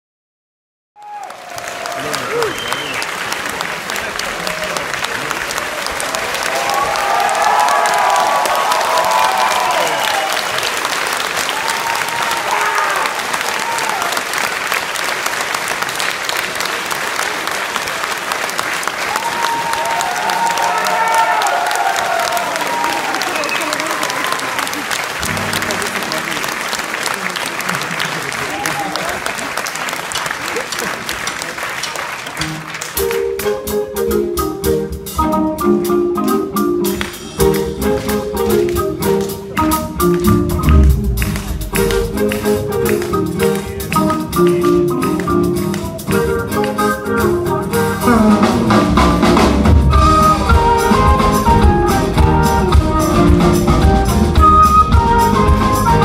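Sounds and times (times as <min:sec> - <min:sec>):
cheers and shouts: 0:01.0 - 0:03.0, 0:04.2 - 0:10.8, 0:11.4 - 0:14.2, 0:19.0 - 0:24.8, 0:28.3 - 0:29.3
audience applauding: 0:01.0 - 0:33.5, 0:36.9 - 0:46.9.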